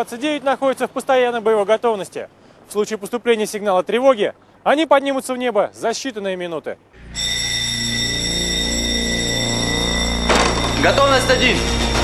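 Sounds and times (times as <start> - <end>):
low hum: 6.9 - 12.0
high-pitched alarm tone: 7.0 - 12.0.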